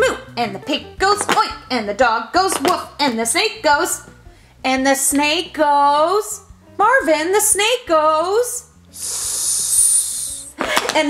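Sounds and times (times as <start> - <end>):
person hissing like a snake: 8.9 - 10.6.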